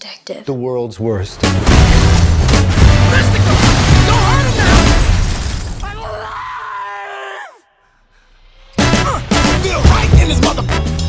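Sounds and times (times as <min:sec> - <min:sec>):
man yelling: 0:03.1 - 0:05.0.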